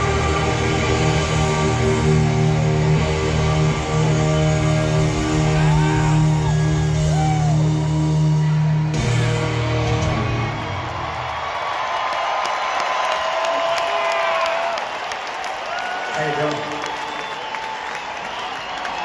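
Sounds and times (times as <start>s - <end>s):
crowd cheering and applauding: 0.0s - 19.0s
rock band chord ringing: 8.0s - 10.8s.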